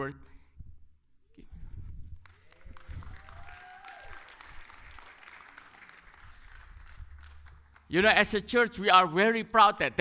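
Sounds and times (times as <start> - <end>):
congregation applauding: 2.2 - 8.2.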